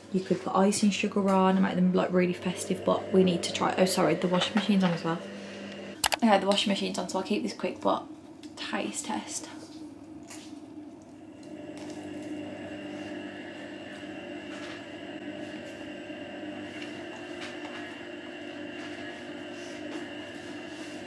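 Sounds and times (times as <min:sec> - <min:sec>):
washing machine humming: 0:00.0 - 0:21.0.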